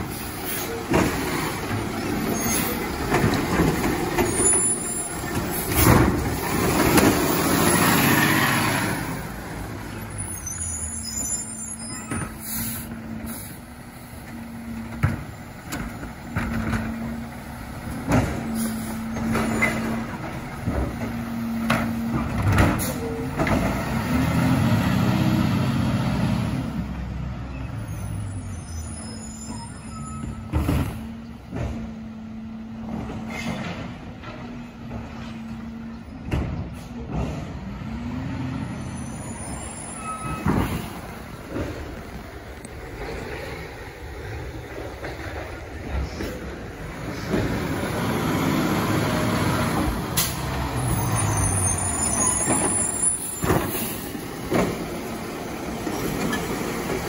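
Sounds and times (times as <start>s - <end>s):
air brake hisses: 12.4s - 13.6s.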